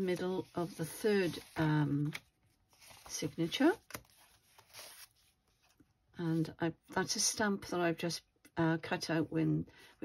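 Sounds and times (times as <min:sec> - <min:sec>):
soft rustle of paper: 0:00.0 - 0:06.5.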